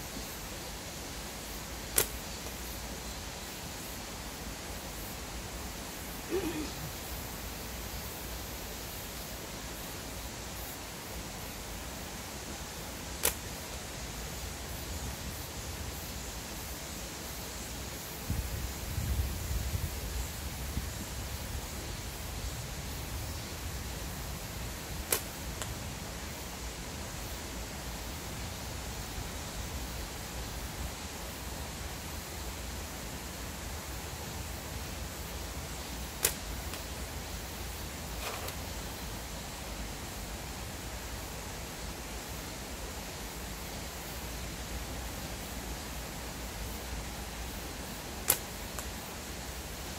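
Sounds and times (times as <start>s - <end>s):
steady outdoor hiss: 0.0s - 49.9s
slingshot bands snapping: 1.9s - 2.6s, 13.2s - 13.6s, 25.0s - 25.8s, 36.0s - 37.0s, 48.2s - 49.0s.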